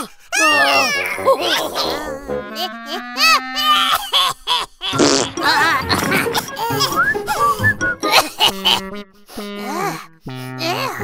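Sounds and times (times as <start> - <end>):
cartoon character giggling: 1.2 - 8.9
light background music: 5.0 - 9.0.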